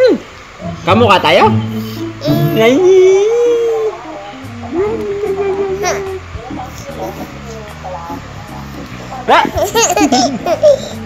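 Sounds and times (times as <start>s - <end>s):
baby laughing: 2.2s - 2.8s, 5.7s - 8.2s, 8.8s - 11.0s.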